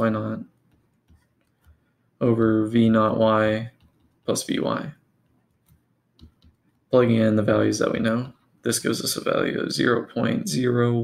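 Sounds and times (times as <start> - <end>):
pen tapping on tablet screen: 0.6 - 1.9, 3.7 - 4.3, 5.3 - 6.7.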